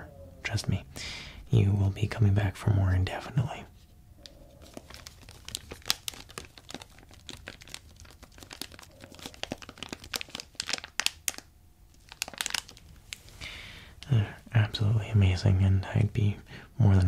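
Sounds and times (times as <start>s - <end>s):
plastic bag crinkling: 4.2s - 14.4s.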